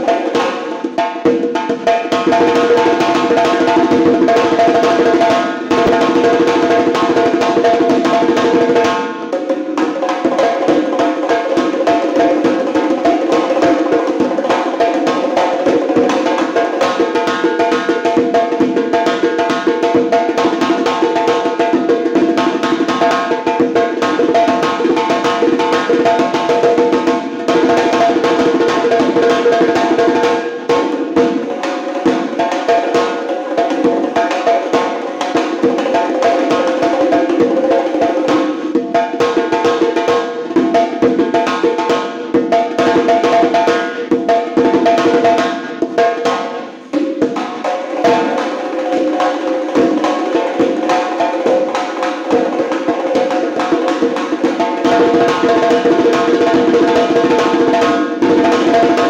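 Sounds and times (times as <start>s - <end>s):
fast hand drumming: 0.0s - 59.0s.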